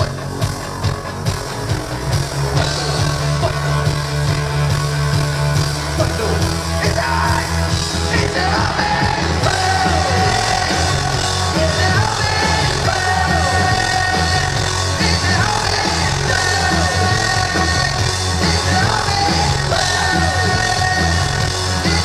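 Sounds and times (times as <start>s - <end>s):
drums: 0.0s - 22.0s
live rock band playing: 0.0s - 22.0s.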